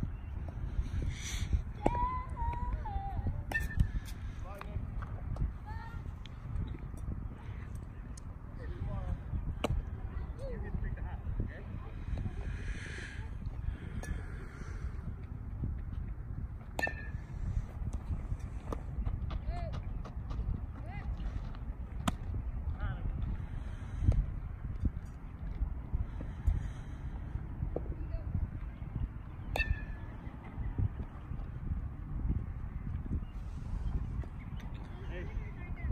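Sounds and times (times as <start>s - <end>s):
wind rumble on microphone: 0.0s - 35.9s
distant voices of players: 0.1s - 35.9s.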